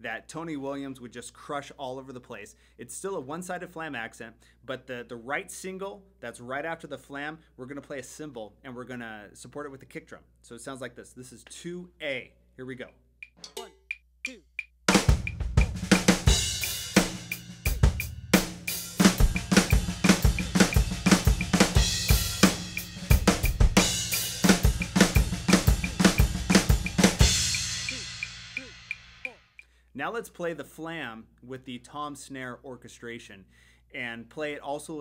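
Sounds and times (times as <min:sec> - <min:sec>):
kick drum: 0:14.9 - 0:16.3
drum kit flam fill: 0:14.9 - 0:29.4.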